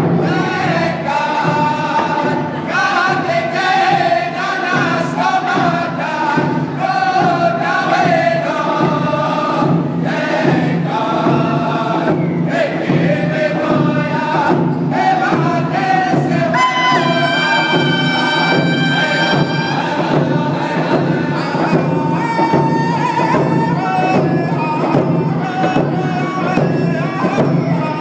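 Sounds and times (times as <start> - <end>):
hand drums beating: 0.0 - 28.0
men singing in unison: 0.0 - 28.0.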